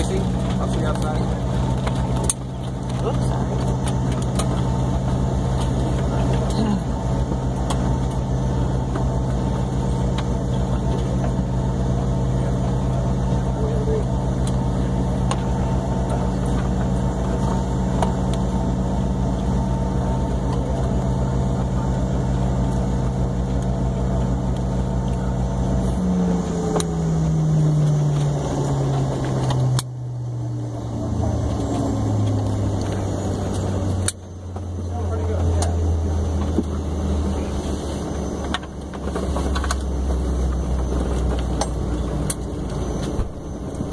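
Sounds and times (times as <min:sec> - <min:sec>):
jet engines humming in cabin: 0:00.0 - 0:43.9.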